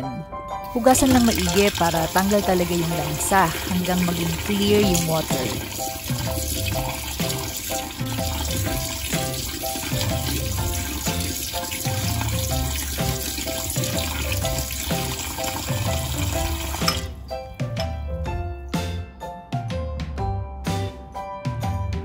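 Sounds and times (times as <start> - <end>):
background music: 0.0 - 22.0
tap water running: 0.6 - 17.2.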